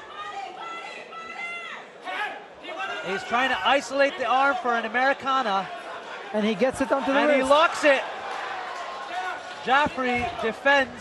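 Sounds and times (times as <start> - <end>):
voices yelling: 0.0 - 11.0.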